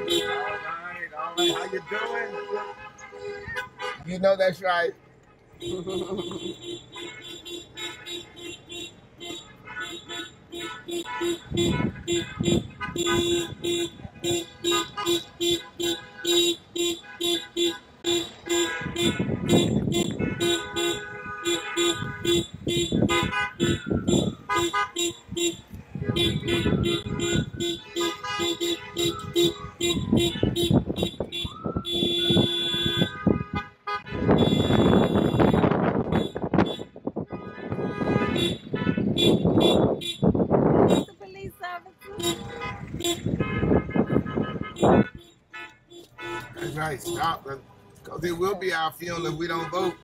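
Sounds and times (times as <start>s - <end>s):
car horn beeping: 0.0s - 4.2s, 5.5s - 47.6s, 49.1s - 50.0s.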